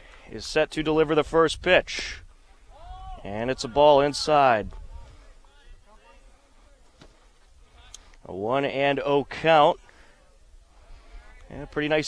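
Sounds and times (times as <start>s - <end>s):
faint distant voices: 2.3s - 8.2s, 9.2s - 12.0s.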